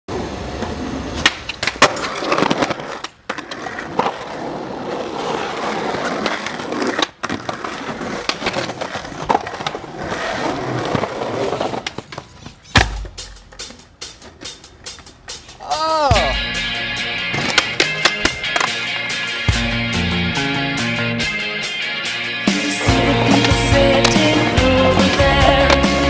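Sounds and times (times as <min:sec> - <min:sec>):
skateboard wheels rolling on concrete: 0:00.1 - 0:26.0
skateboard clacks and slaps: 0:00.5 - 0:15.0, 0:17.3 - 0:18.8.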